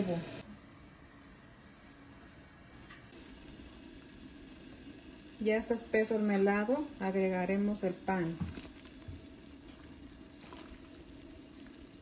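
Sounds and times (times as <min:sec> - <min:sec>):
syrup bubbling in a pot: 0:03.1 - 0:12.0.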